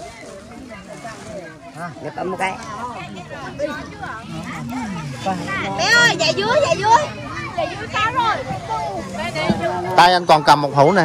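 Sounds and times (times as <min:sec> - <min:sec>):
quiet talking voices: 0:00.0 - 0:11.0.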